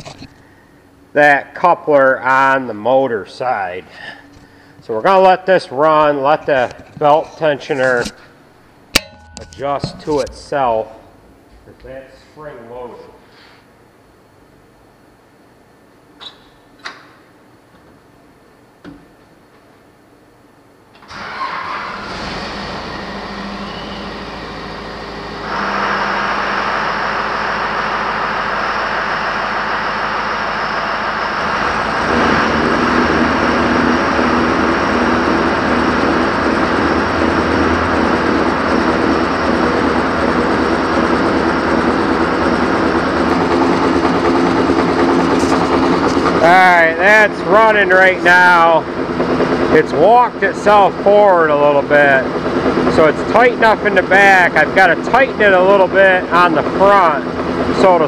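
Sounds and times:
conveyor belt running: 21.0 - 58.0
truck engine running: 21.9 - 58.0.

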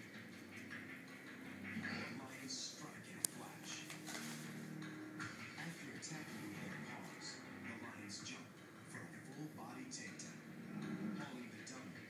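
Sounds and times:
music with low chord: 0.0 - 12.0.

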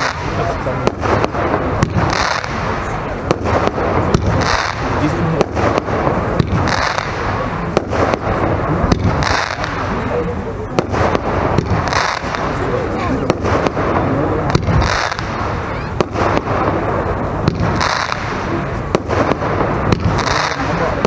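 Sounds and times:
pops and crackles: 0.0 - 16.7, 17.4 - 21.0
firework shot launching: 0.0 - 21.0
fountain firework crackling: 0.0 - 21.0.

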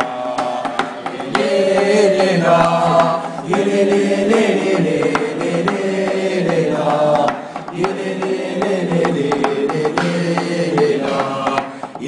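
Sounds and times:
percussive beat: 0.0 - 12.0
voices singing held notes: 0.0 - 12.0.

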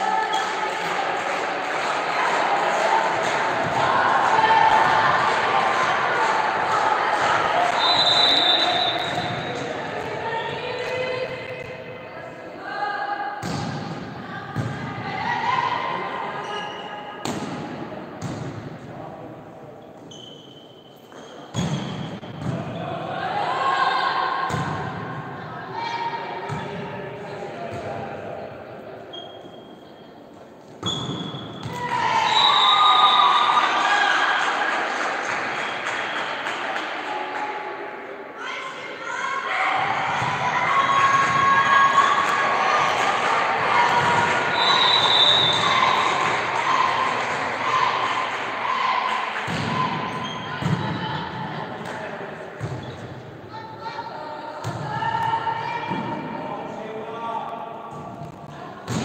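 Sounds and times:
people shouting and cheering: 0.0 - 13.2, 31.6 - 52.2.

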